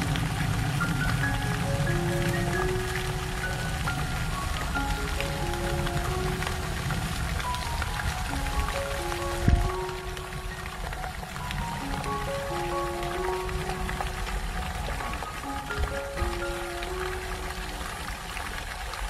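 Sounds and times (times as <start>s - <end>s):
melody of held notes: 0.0s - 18.6s
low rumbling noise: 0.0s - 19.0s.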